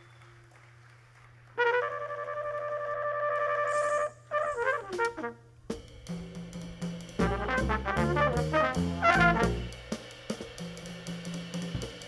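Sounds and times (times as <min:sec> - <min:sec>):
flugelhorn playing: 0:01.6 - 0:05.6, 0:07.2 - 0:09.8.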